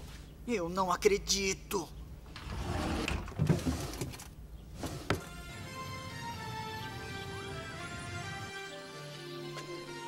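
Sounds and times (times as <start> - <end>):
music tones: 5.2 - 10.0.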